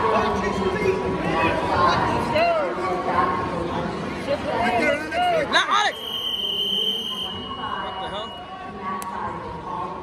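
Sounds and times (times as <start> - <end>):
gym crowd noise: 0.0 - 10.0.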